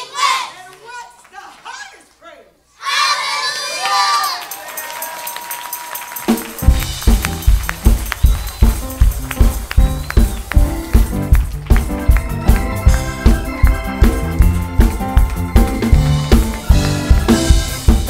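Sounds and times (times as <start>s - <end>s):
crowd noise in hall: 0.0s - 18.0s
band with kick drum and bass: 6.3s - 18.0s.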